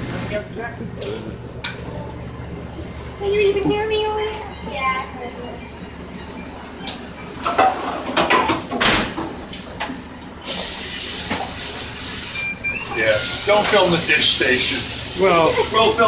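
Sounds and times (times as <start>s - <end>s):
dishes and pans clattering: 7.4s - 9.2s
spray hose hissing: 10.4s - 12.4s, 13.2s - 16.0s.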